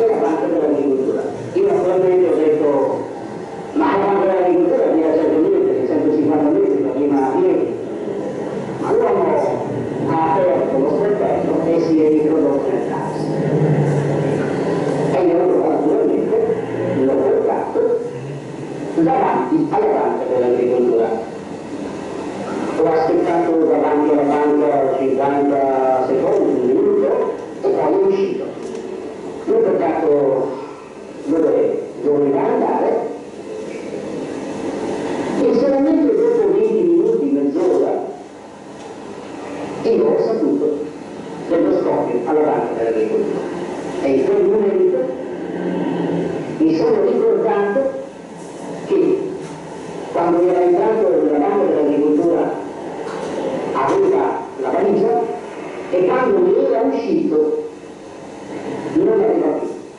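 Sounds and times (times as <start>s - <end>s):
man speaking over loudspeakers: 0.0s - 21.4s, 22.5s - 28.8s, 29.4s - 33.3s, 35.3s - 38.3s, 39.7s - 45.7s, 46.5s - 48.2s, 48.8s - 49.5s, 50.1s - 57.8s, 58.8s - 59.9s
steady background noise: 0.0s - 59.9s.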